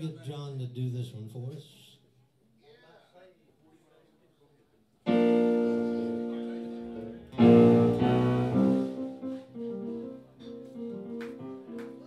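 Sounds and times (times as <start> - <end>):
piano chords: 5.1 - 12.0.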